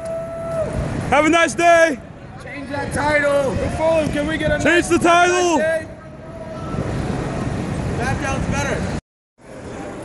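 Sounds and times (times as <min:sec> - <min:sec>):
low rumble of traffic: 0:00.0 - 0:10.0.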